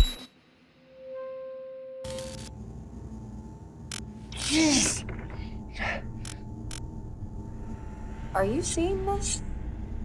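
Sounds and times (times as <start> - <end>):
faint low hum: 2.1 - 10.0.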